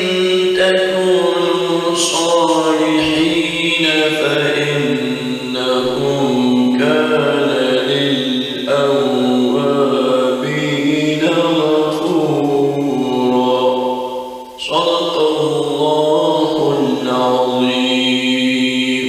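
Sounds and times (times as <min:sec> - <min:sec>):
melodic chanted recitation: 0:00.0 - 0:19.0.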